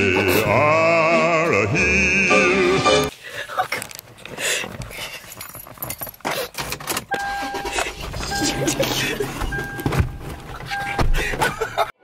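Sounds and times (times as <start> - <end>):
knocks and rustles of people: 3.6 - 7.1, 7.7 - 11.8
car electronic warning tone: 7.1 - 11.1.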